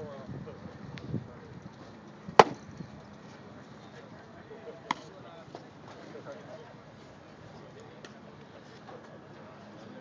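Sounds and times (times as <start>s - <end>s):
wooden bat striking ball: 2.4s - 2.7s.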